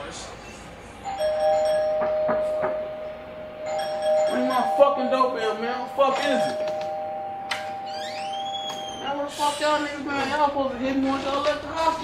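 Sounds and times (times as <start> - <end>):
doorbell two-tone chime: 1.1 - 9.1.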